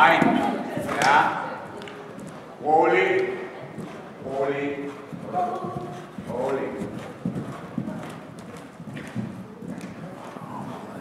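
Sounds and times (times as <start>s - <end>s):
hoofbeats on sand: 4.8s - 10.8s.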